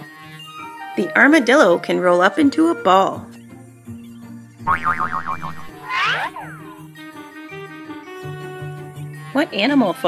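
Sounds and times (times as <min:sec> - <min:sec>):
light background music: 0:00.0 - 0:10.0
cartoon boing sound effects: 0:04.7 - 0:06.7.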